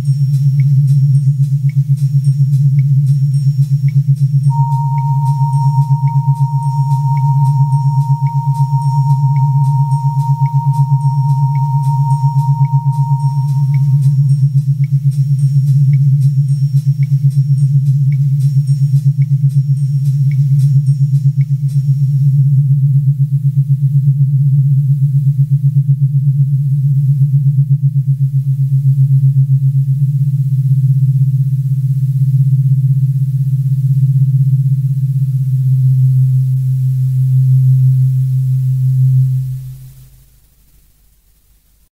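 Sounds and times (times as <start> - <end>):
wobbling synthesizer drone: 4.5 - 14.5.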